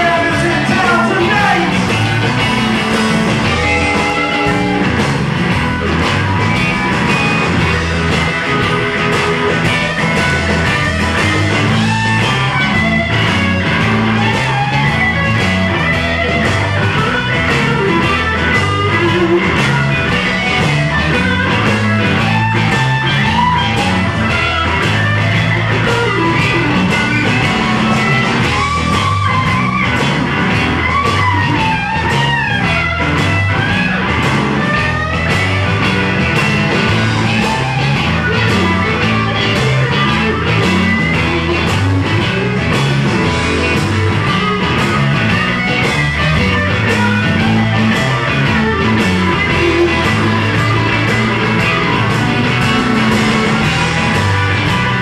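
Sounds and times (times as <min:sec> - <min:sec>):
bass guitar: 0:00.0 - 0:55.0
drums: 0:00.0 - 0:55.0
electric guitar solo: 0:00.0 - 0:55.0.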